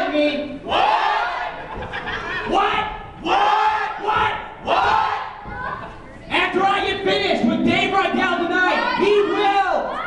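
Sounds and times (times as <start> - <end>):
man shouting loudly: 6.4 - 10.0.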